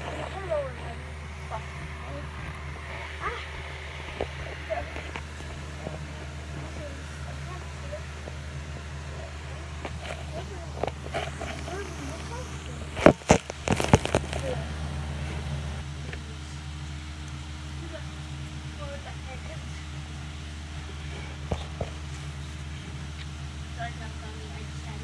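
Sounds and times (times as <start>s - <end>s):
faint voices: 0.0s - 25.0s
steady low hum: 0.0s - 25.0s.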